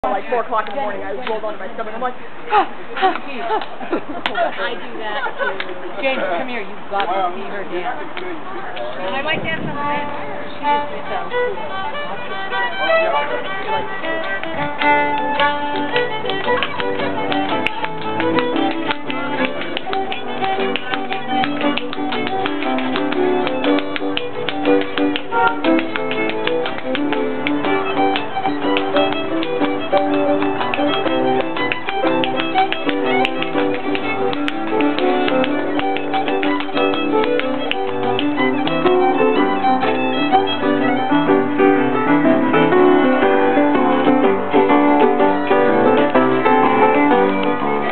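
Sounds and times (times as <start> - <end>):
piano: 7.4 - 47.9
fiddle dance tune: 7.6 - 47.9
dance steps tapping on floor: 13.5 - 41.3.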